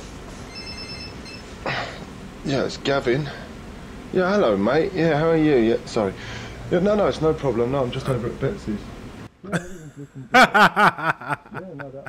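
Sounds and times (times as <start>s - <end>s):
electronic telephone ring: 0.5s - 1.5s.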